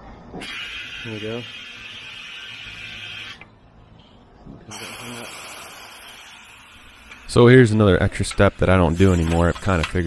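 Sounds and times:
compressed air hissing: 0:00.4 - 0:03.5, 0:04.7 - 0:07.7, 0:08.8 - 0:09.8.

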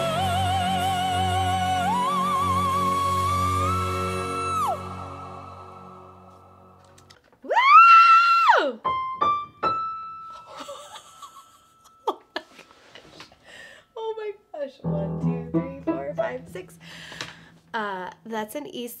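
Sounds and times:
piano notes: 0:08.8 - 0:10.6, 0:14.8 - 0:17.9
low sustained notes: 0:14.8 - 0:17.9.

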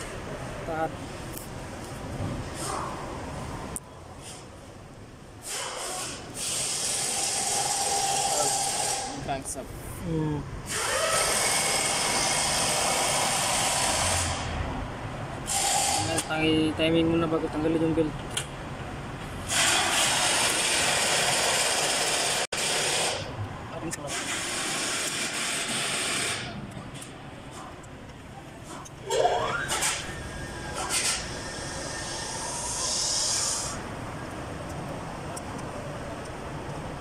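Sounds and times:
power tool running: 0:10.7 - 0:14.5.

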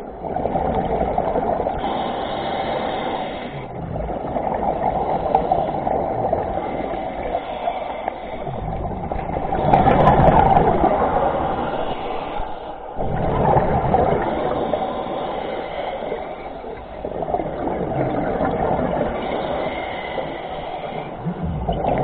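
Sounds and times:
scuba regulator bubbles gurgling: 0:00.0 - 0:22.0.

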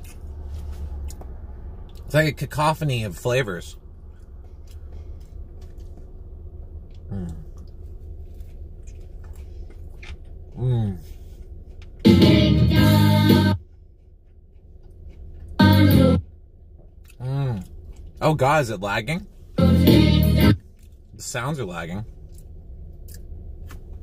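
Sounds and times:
steady low hum: 0:00.0 - 0:24.0
person humming: 0:07.1 - 0:07.5, 0:10.6 - 0:11.0.

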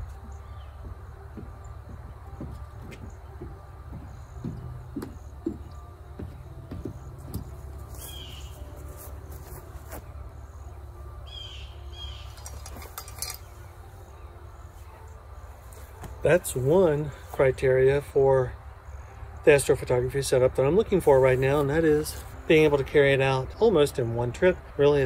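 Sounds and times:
footsteps: 0:00.0 - 0:10.3, 0:15.6 - 0:17.4
bird chirps: 0:07.9 - 0:08.8, 0:11.2 - 0:12.6.

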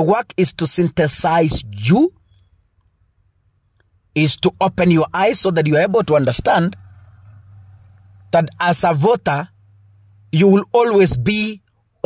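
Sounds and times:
man's voice: 0:00.0 - 0:02.1, 0:04.2 - 0:06.8, 0:08.4 - 0:09.5, 0:10.4 - 0:11.6.

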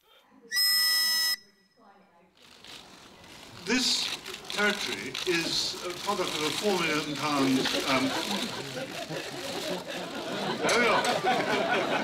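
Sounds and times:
shrill whistle blast: 0:00.5 - 0:01.8.

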